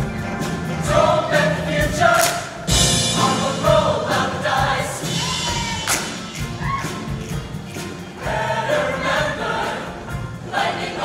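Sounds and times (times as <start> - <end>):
choir singing with accompaniment: 0.0 - 11.0.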